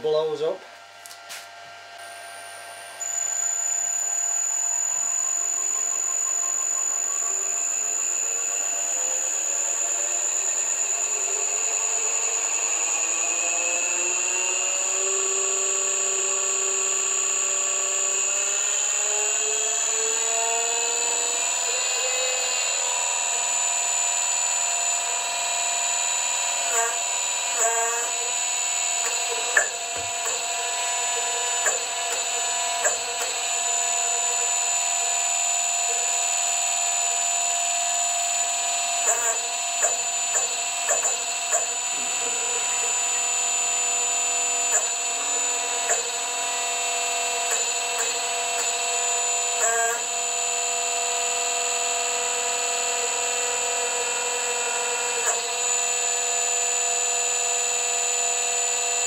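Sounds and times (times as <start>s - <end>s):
hydraulic pump motor whining: 2.0s - 59.0s.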